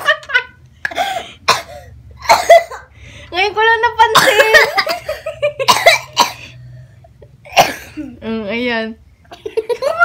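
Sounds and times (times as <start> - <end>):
young girl coughing: 1.0 - 2.9, 4.1 - 6.6, 7.5 - 8.2.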